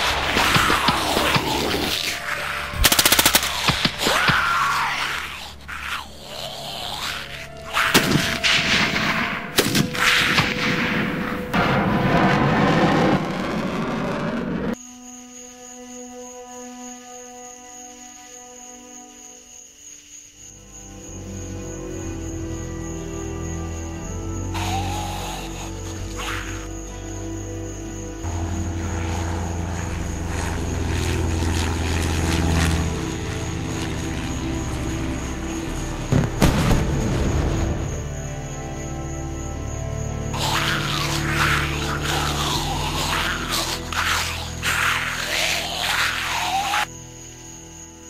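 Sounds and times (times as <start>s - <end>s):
propeller plane engine drone: 0.0s - 4.0s, 27.2s - 36.6s, 37.7s - 46.9s
soft sustained music: 0.0s - 12.4s, 14.8s - 19.6s, 20.3s - 48.0s
noisy rumble: 28.2s - 37.2s.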